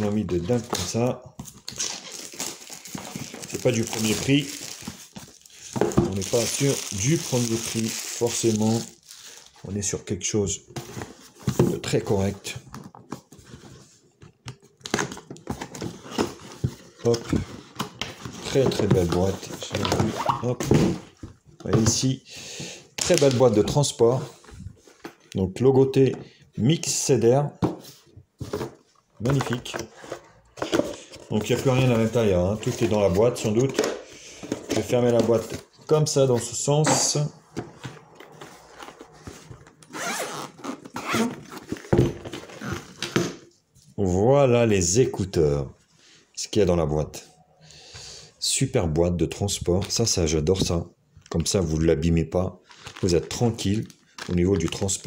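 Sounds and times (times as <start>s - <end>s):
zipper being pulled open: 39.9s - 41.3s.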